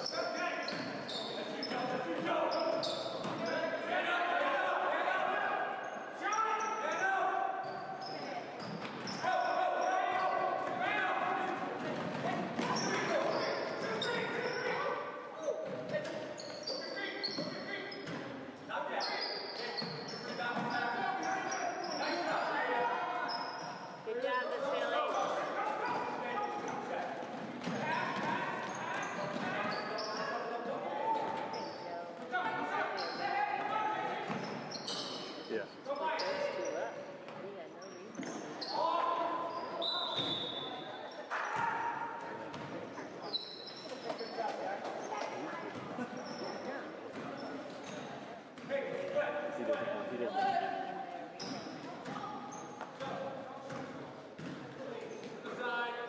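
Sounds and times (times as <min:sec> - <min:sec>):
people talking and calling: 0:00.0 - 0:55.8.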